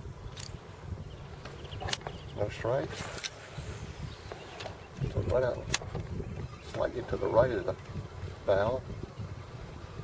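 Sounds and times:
wind rumbling on microphone: 0.0 - 10.0
sharp clicks: 4.3 - 6.1.

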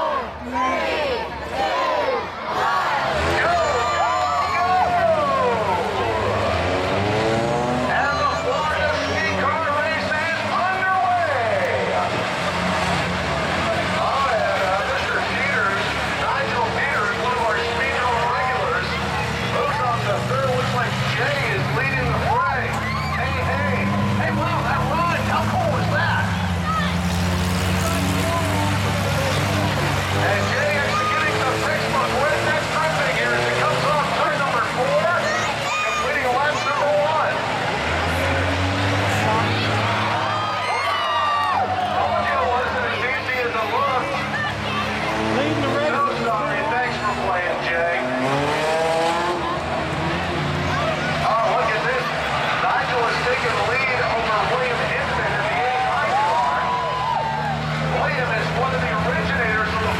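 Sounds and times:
crowd voices: 0.0 - 59.9
racing car engines revving: 0.0 - 59.9.

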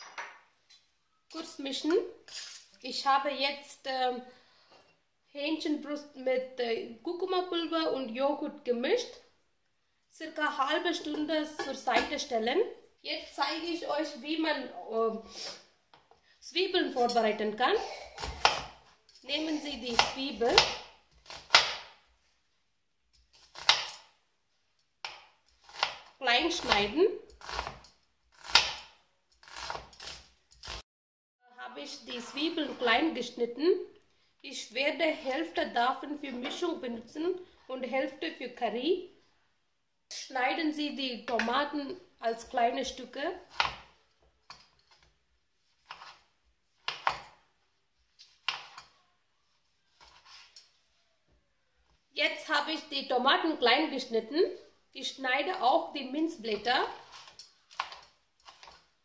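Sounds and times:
knife cutting onion: 2.3 - 2.7, 18.1 - 22.0, 23.2 - 24.1, 25.0 - 30.8, 43.4 - 45.0, 45.8 - 47.4.

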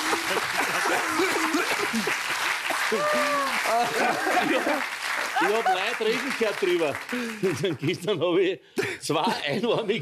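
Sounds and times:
audience applauding: 0.0 - 8.0.

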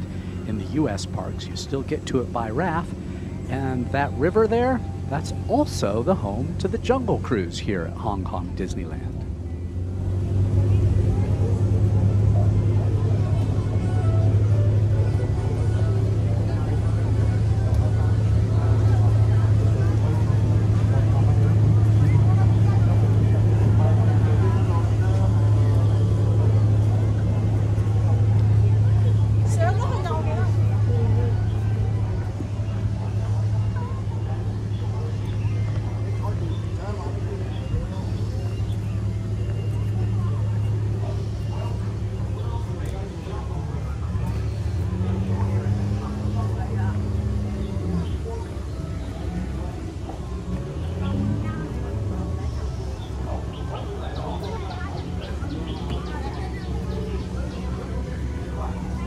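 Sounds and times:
boat motor humming: 0.0 - 59.0.

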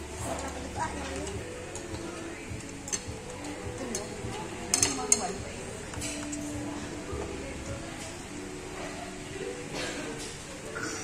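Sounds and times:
background music: 0.0 - 11.0
murmur of voices: 0.0 - 11.0
utensils clinking on ceramic bowls: 0.1 - 6.6.

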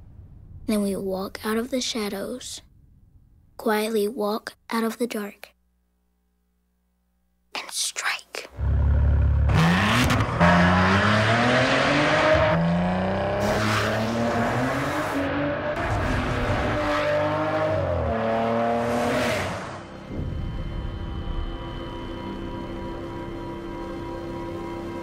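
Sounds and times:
car engine starting and accelerating: 8.6 - 20.1.

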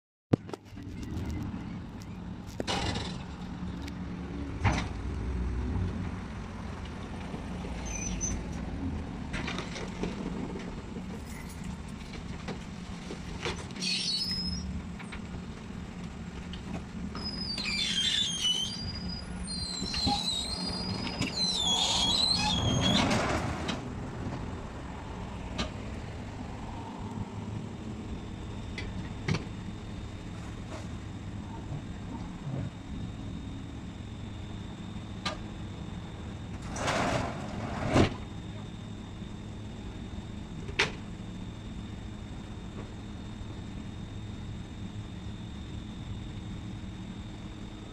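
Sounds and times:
garbage truck engine rumbling: 0.4 - 47.9
brief high squeak: 7.8 - 8.4, 13.8 - 14.7, 17.2 - 23.2.

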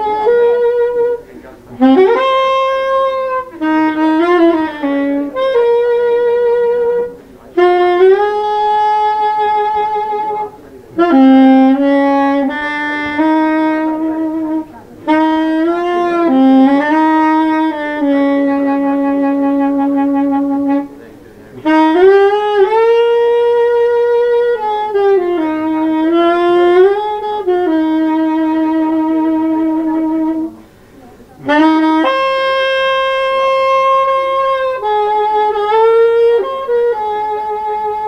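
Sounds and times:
soprano saxophone improvising: 0.0 - 38.0.

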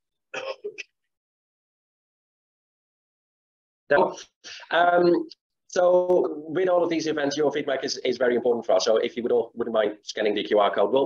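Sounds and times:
man clearing his throat: 0.3 - 0.8.

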